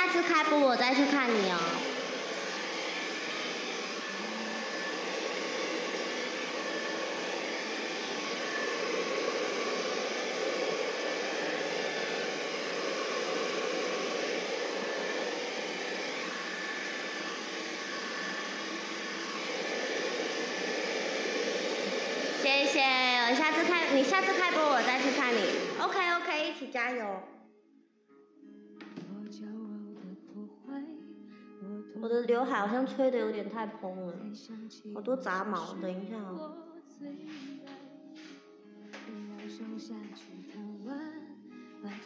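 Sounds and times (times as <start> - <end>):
hair dryer blowing: 0.0 - 27.1, 35.2 - 35.8, 37.1 - 40.9.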